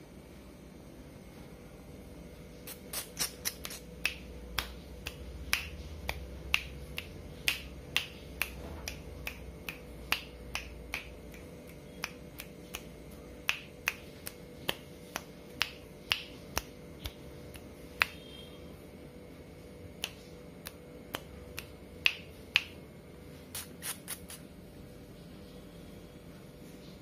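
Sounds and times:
fingers snapping: 2.6s - 18.4s, 20.0s - 22.8s, 23.5s - 24.4s.

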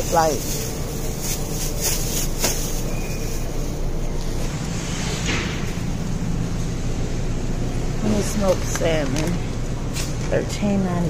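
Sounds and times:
plastic package rustling: 0.0s - 4.4s
refrigerator low hum: 0.0s - 11.0s.

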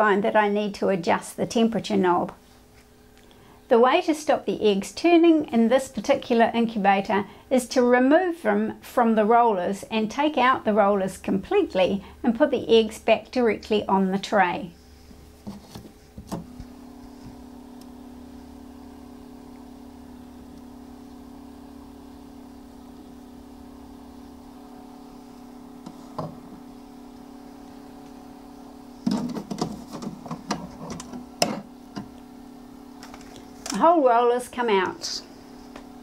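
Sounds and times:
steady electric hum: 0.0s - 36.0s.

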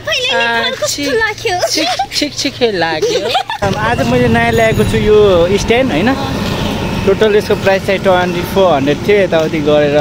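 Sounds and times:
man talking: 2.1s - 6.4s, 7.0s - 10.0s
low background rumble: 3.6s - 8.8s.

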